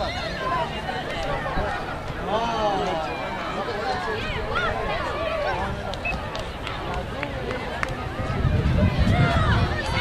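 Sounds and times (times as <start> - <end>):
children calling and chattering: 0.0 - 10.0
wind rumble on microphone: 7.3 - 10.0.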